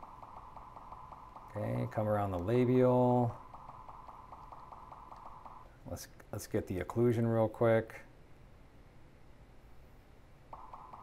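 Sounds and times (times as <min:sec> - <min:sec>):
faint steady hum: 0:00.0 - 0:11.0
man speaking: 0:01.5 - 0:03.4, 0:05.8 - 0:08.1.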